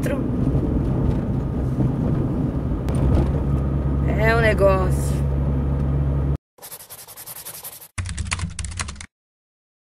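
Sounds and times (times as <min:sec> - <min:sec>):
car engine and road rumble: 0:00.0 - 0:06.4.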